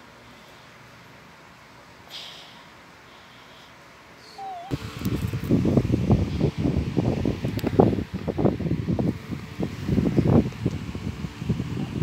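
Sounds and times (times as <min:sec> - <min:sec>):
faint squeak: 0:04.2 - 0:04.7.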